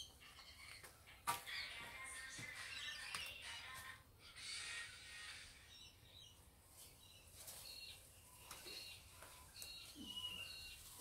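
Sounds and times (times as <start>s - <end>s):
distant birds chirping: 5.0s - 11.0s
hedge leaves rustling: 9.2s - 11.0s.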